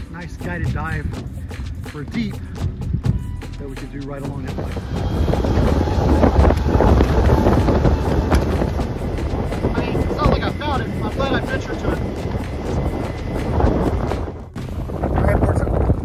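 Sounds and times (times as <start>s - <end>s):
wind buffeting microphone: 0.0s - 16.0s
choppy water slapping a boat: 4.2s - 16.0s.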